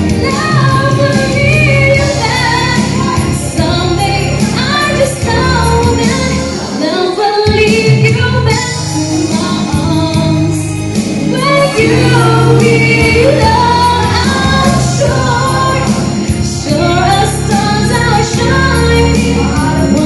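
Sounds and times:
instrumental accompaniment: 0.0 - 20.0
woman singing into microphone: 0.0 - 20.0.

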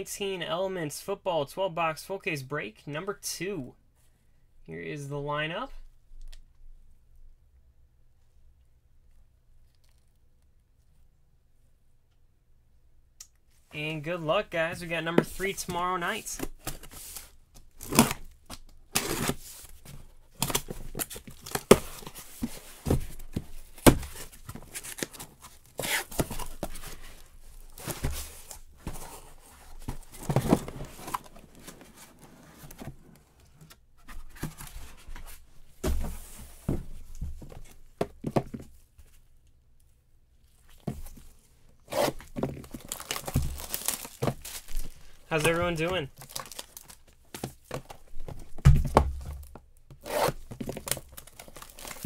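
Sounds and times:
packing tape ripping: 17.8 - 18.3
cardboard boxes scraping and knocking: 19.0 - 38.7
plastic wrap tearing and crinkling: 42.0 - 47.2, 50.0 - 52.0.

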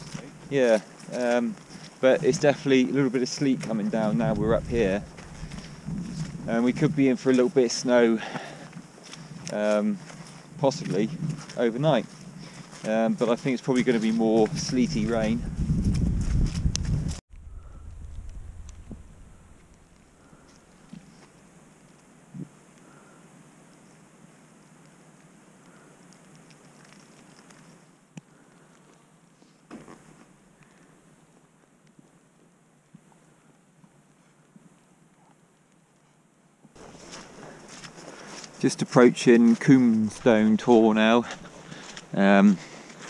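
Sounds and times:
footsteps on wet turf: 0.0 - 17.2, 36.8 - 43.0
faint wind: 0.0 - 43.0.

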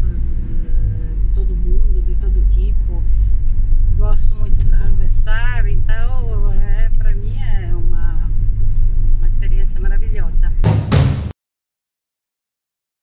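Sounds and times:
car engine and tyres rumbling: 0.0 - 10.6.

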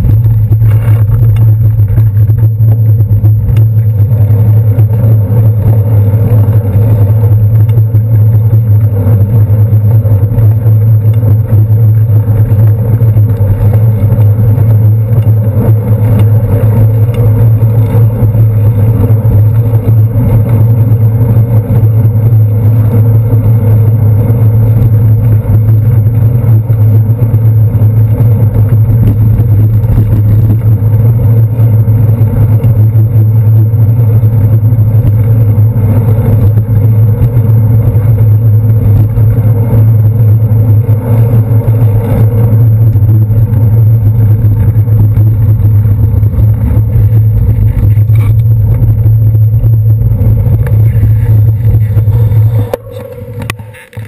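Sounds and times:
low rumble: 0.0 - 54.0
passing cars: 0.0 - 54.0.

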